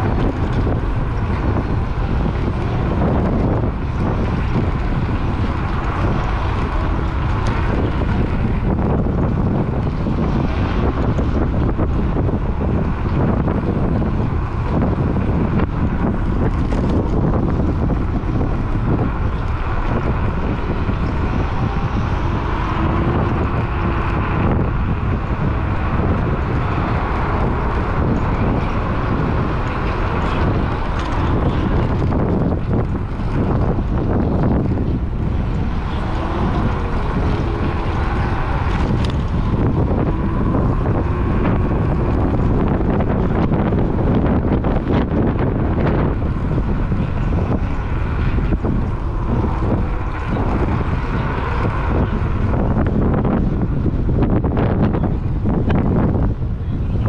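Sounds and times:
road noise rumble: 0.0s - 57.0s
wind buffeting microphone: 0.0s - 57.0s.

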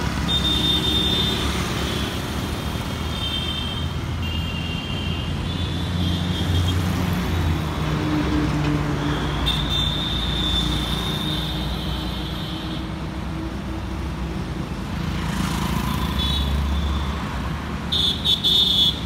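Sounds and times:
road traffic passing: 0.0s - 19.0s.

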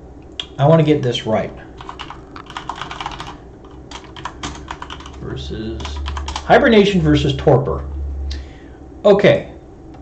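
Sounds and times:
typing on computer keyboard: 1.8s - 5.2s, 5.8s - 6.5s.

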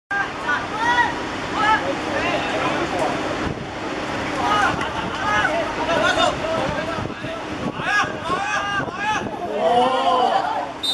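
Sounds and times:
distant voices calling out: 0.1s - 10.9s
wind noise on microphone: 3.4s - 9.8s.

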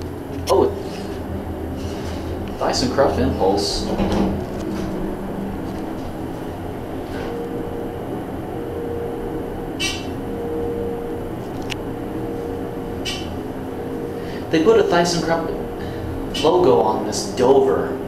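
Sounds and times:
elevator running hum: 0.0s - 18.0s
faint steady whine: 0.0s - 18.0s.

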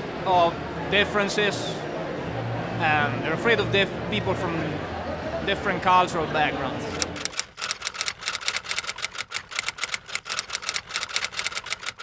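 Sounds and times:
rapid keystroke clicks: 7.0s - 12.0s.

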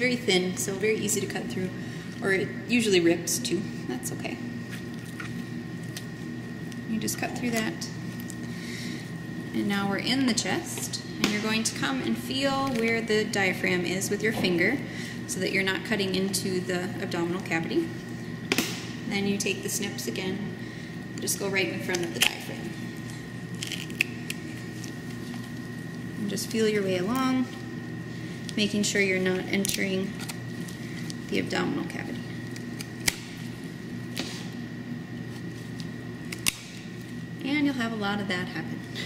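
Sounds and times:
faint high hum: 0.0s - 39.0s
pruning snips crunching: 35.7s - 36.8s.

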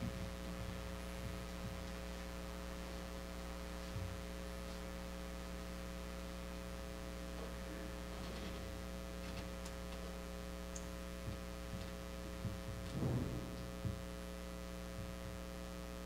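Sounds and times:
electrical mains hum: 0.0s - 16.0s.

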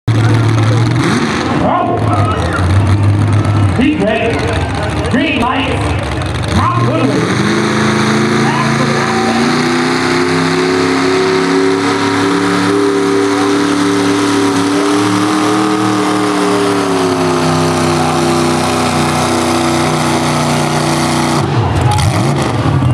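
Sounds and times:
truck engine at high revs: 0.1s - 22.9s.

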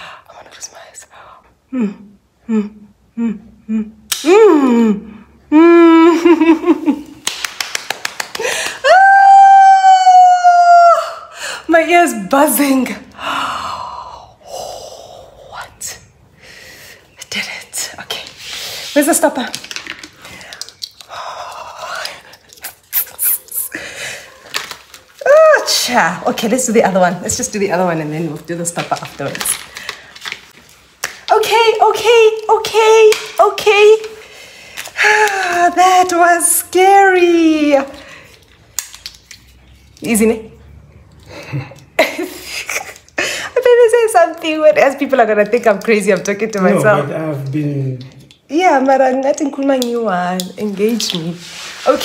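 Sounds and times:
woman gasping: 8.4s - 8.9s
woman crying out: 8.8s - 11.3s.

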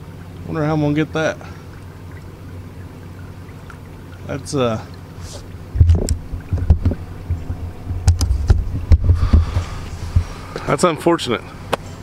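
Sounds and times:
camera handling rumbling thumps: 5.3s - 10.7s
sharp knocks on microphone: 5.8s - 10.3s.

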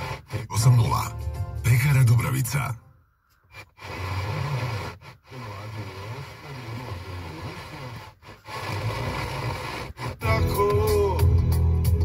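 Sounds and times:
radio static hiss: 0.0s - 1.1s, 3.5s - 10.3s.

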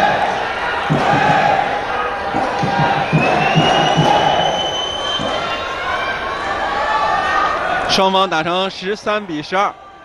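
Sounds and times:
crowd voices din: 0.0s - 10.0s.

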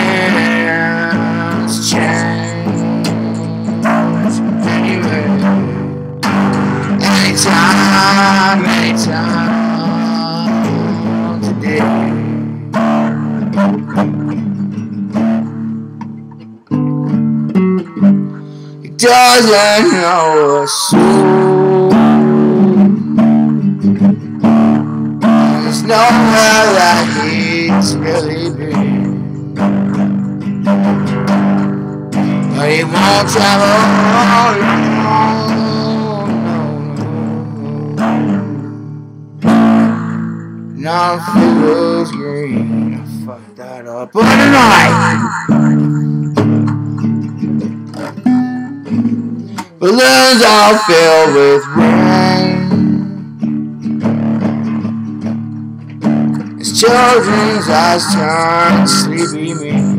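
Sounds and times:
person singing: 0.0s - 15.7s, 18.3s - 23.6s, 24.2s - 53.6s, 56.4s - 59.9s
acoustic guitar strumming: 0.0s - 59.9s.

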